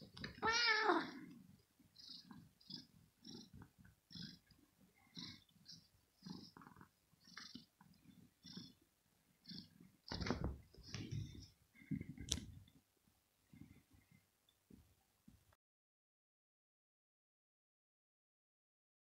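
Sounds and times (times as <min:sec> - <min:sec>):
kitten meowing: 0:00.4 - 0:01.1.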